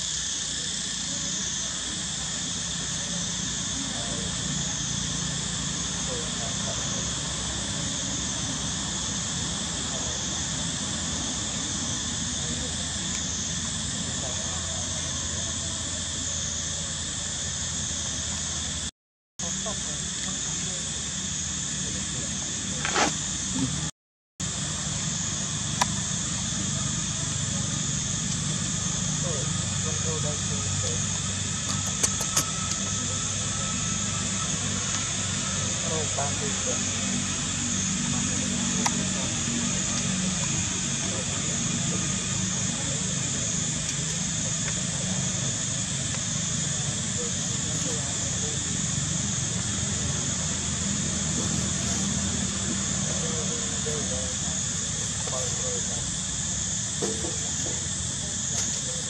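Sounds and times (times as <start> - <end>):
faint distant voices: 0.3 - 23.9, 24.8 - 59.0.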